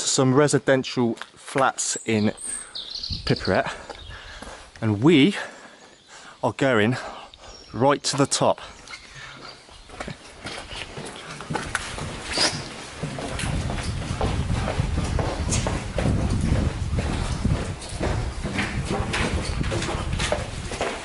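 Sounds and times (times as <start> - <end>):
footsteps on concrete stairs: 1.1 - 6.2, 7.7 - 21.0
dense rumble: 12.8 - 20.8.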